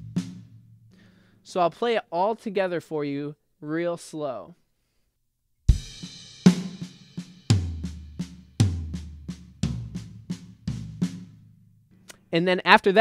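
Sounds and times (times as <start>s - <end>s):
floor tom hits: 7.5s - 11.2s.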